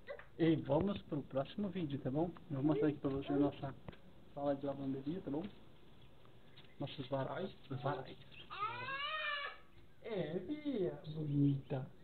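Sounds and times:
high-pitched vocal cry: 7.8s - 9.7s.

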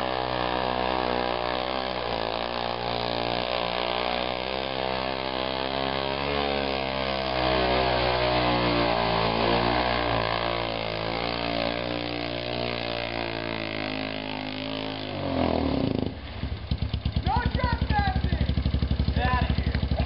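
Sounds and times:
atv engine revving: 0.0s - 20.0s.

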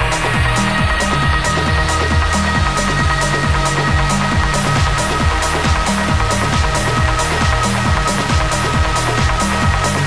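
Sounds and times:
trance dance music: 0.0s - 10.0s.

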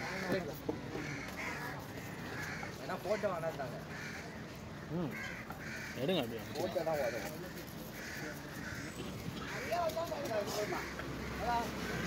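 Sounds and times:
crows cawing: 0.0s - 12.0s.

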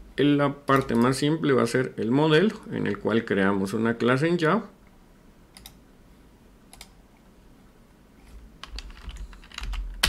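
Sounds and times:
computer keyboard keystrokes: 8.6s - 10.0s.

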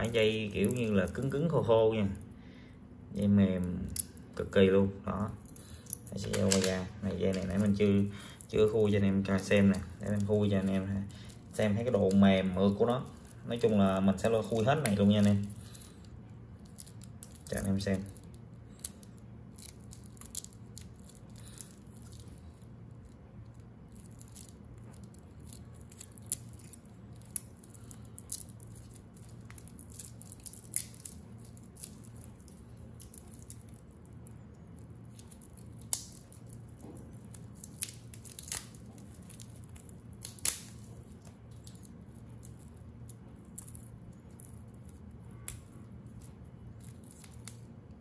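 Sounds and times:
faint low hum: 0.0s - 48.0s.

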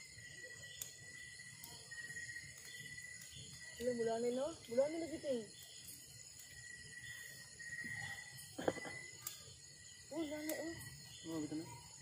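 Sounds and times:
fire popping: 0.0s - 12.0s
wood fire crackling: 0.0s - 12.0s.

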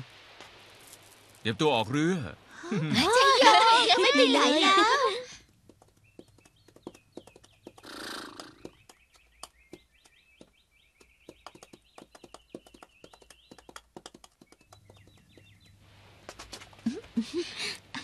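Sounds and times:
horse hooves galloping on dirt: 5.5s - 16.9s
steady high chirping: 5.8s - 15.8s.

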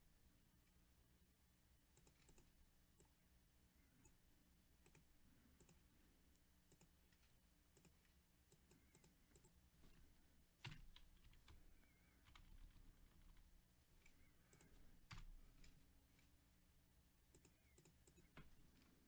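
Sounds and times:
computer keyboard typing clicks: 2.0s - 3.1s, 6.7s - 6.9s, 7.8s - 9.6s, 14.0s - 15.7s, 17.3s - 18.5s.

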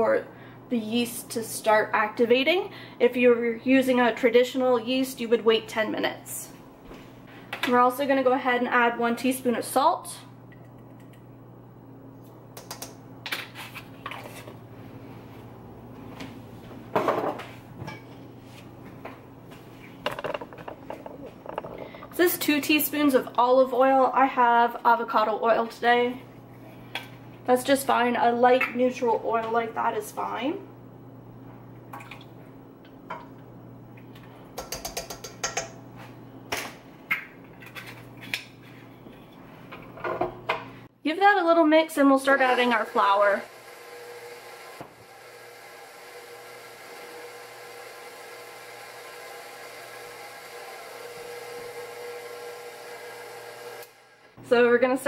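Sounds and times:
steady low hum: 0.0s - 41.0s
kitchen utensils clicking and clinking: 20.1s - 23.4s, 34.6s - 35.8s, 36.5s - 38.6s.

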